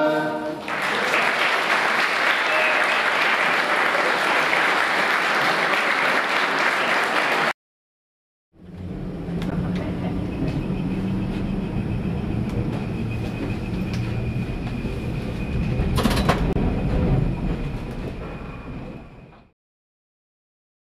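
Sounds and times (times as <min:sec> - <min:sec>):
tram wheels rumbling: 0:08.6 - 0:19.5.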